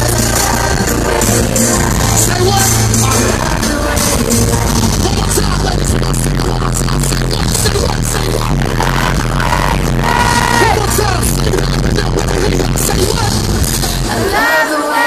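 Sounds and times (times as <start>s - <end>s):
person singing: 0.0s - 13.2s, 13.9s - 15.0s
loud live music through pa: 0.0s - 15.0s.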